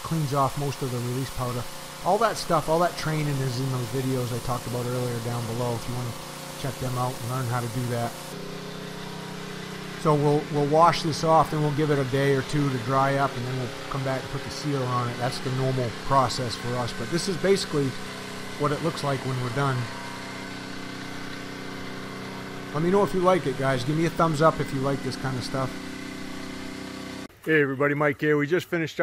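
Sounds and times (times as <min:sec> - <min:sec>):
pressure washer engine humming: 0:00.0 - 0:27.3.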